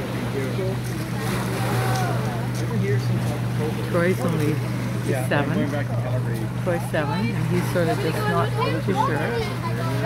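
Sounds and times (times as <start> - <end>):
faint voices talking: 0.0 - 10.0
low motor hum: 0.0 - 10.0.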